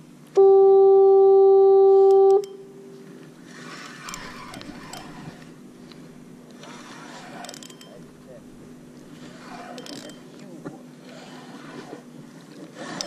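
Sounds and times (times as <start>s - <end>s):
loud horn blast: 0.4s - 2.4s.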